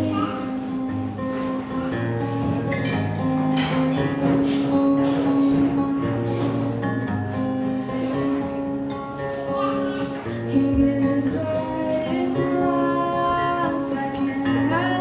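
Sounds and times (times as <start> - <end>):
acoustic guitar strumming chords: 0.0 - 15.0.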